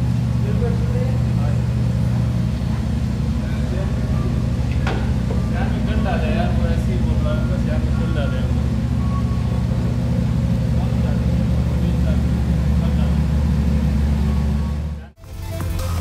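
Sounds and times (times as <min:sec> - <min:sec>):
car engine idling: 0:00.0 - 0:16.0
music: 0:15.2 - 0:16.0.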